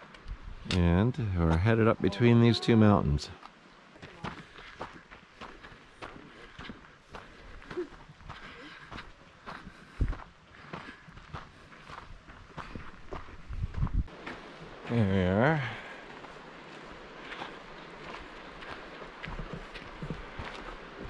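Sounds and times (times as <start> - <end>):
footsteps on packed dirt: 3.3 - 21.0.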